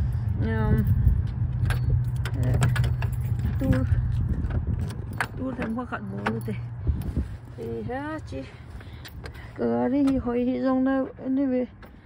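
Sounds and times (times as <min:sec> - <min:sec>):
low rumble: 0:00.0 - 0:09.6
keys jangling: 0:00.6 - 0:07.8.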